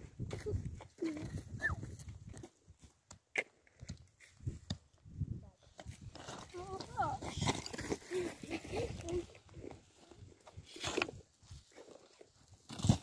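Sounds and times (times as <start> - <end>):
shovel striking stony earth: 12.6 - 13.0.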